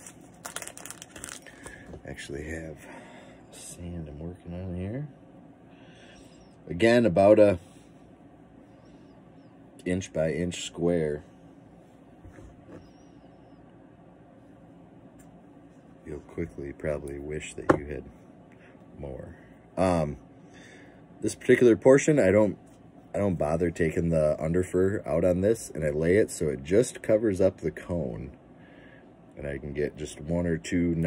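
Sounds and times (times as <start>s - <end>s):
plastic packet crinkling: 0.0s - 1.8s.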